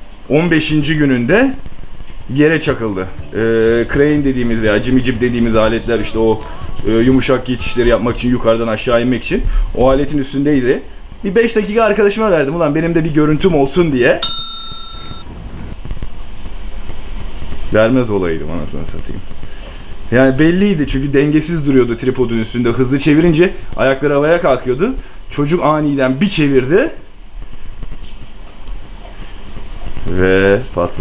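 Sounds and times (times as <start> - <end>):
bell-like ringing tone: 14.2 - 15.3.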